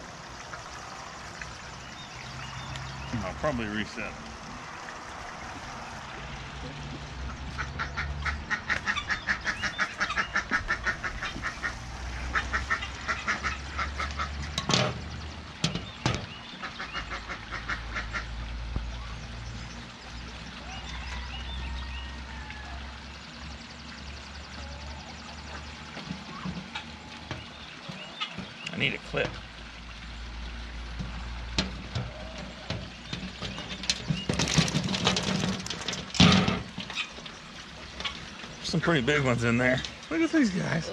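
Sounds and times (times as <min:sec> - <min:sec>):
ducks quacking: 0:06.6 - 0:15.0, 0:15.7 - 0:18.7.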